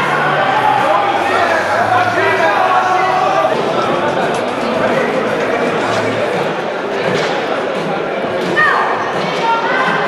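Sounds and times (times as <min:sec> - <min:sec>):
crowd chatter and shouting: 0:00.0 - 0:10.0.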